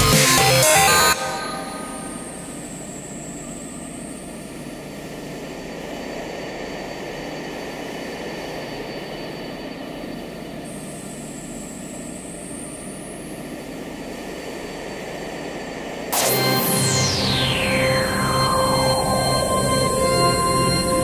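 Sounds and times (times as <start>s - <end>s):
synth noise wash: 13.3s - 21.0s.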